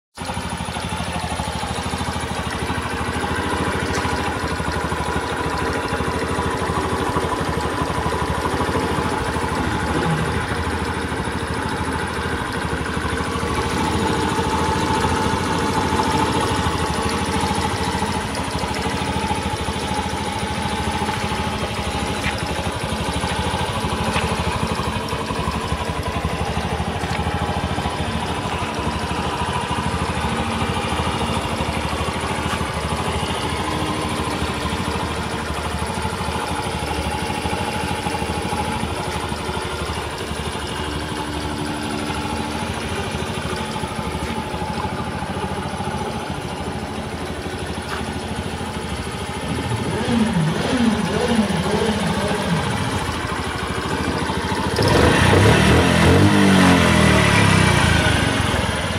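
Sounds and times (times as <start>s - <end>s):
motorcycle engine idling: 0.2s - 58.9s.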